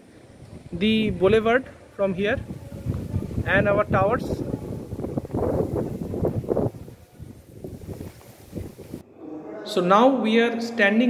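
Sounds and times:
wind buffeting microphone: 0.0s - 9.0s.

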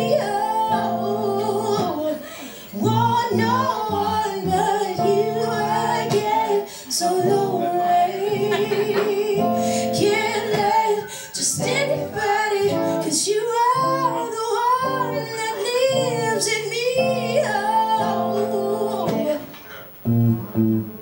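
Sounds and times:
woman singing with vibrato: 0.0s - 19.6s
acoustic guitar chords: 0.0s - 21.0s.

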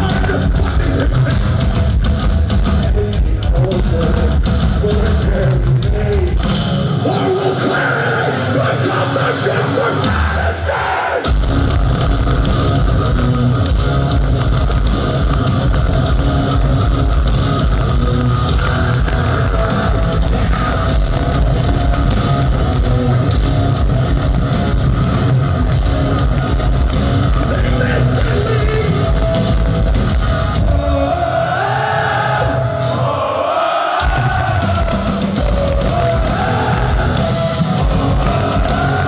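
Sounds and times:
drums and bass: 0.0s - 33.2s, 33.9s - 39.0s
distorted electric guitar: 0.0s - 33.3s, 34.0s - 39.0s
live metal band: 0.0s - 39.0s.

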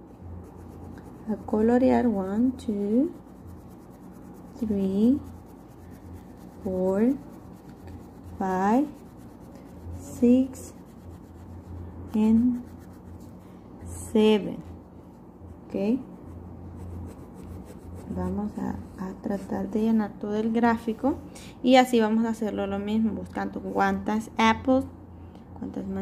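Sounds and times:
crayon rubbing on paper: 0.3s - 13.4s, 16.0s - 18.4s.

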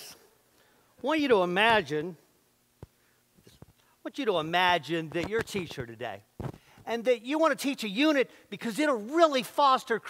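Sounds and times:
man speaking: 1.0s - 2.2s, 4.0s - 10.0s.

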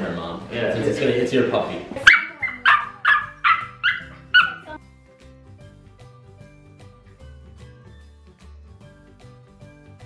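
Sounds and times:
puppy yapping: 2.0s - 4.8s.

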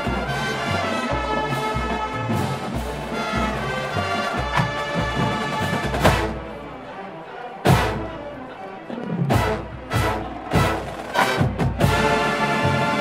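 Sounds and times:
marching band brass chord: 0.0s - 6.8s, 9.2s - 13.0s
low drum beats: 9.2s - 13.0s.

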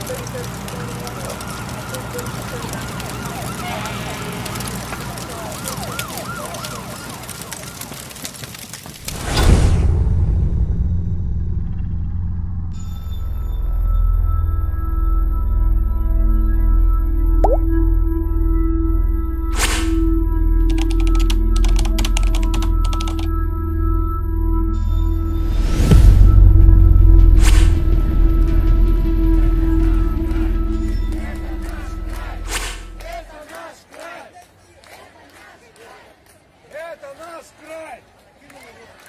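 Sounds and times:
ambient music: 10.8s - 33.3s
siren warbling quickly: 17.4s - 17.7s
low steady drone: 23.2s - 33.2s.

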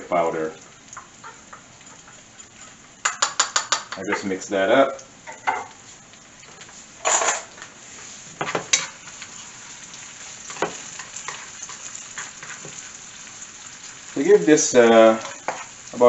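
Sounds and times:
vegetables sizzling in hot oil: 0.0s - 16.0s
spatula stirring and scraping: 0.9s - 4.0s, 5.6s - 16.0s.

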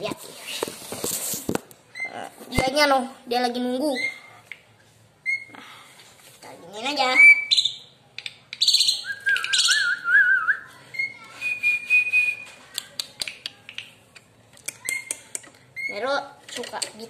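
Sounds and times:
songbird chirping: 7.1s - 12.6s
person whistling: 11.4s - 12.4s.

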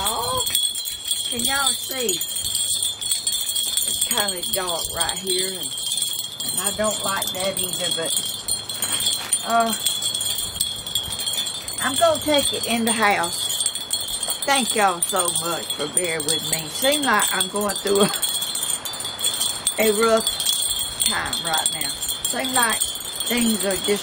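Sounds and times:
wind chimes ringing: 0.0s - 24.0s.

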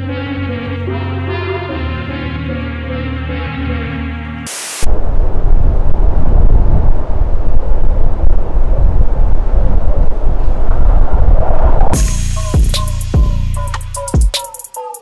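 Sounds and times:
wind buffeting microphone: 4.9s - 12.0s.

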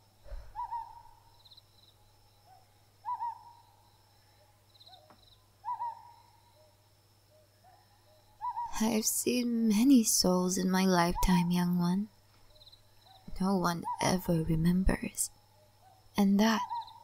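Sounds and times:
faint bird chirps: 0.2s - 9.5s, 10.9s - 17.0s
owl hooting: 0.3s - 1.3s, 2.5s - 3.8s, 4.4s - 8.8s.

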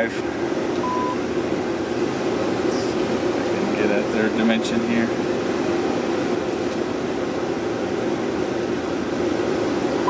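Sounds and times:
ventilation fan whoosh and hum: 0.0s - 10.0s.

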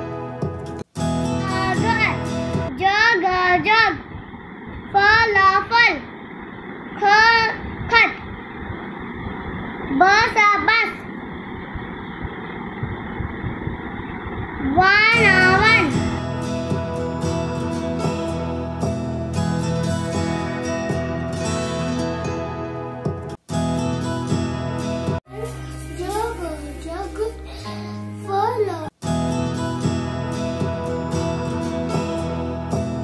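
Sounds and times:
instrumental music: 0.0s - 2.7s, 15.2s - 33.0s
child reading aloud: 1.4s - 4.1s, 4.9s - 6.1s, 7.0s - 8.3s, 9.9s - 11.1s, 14.6s - 16.1s, 25.3s - 29.0s.

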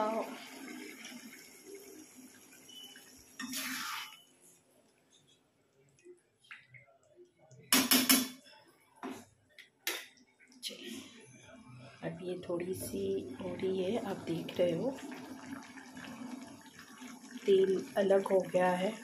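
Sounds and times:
metal spatula scraping a pan: 3.4s - 4.2s.

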